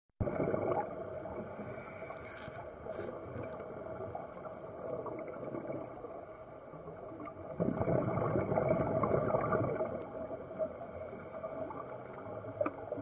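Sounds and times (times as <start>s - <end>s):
muffled underwater rushing: 0.2s - 13.0s.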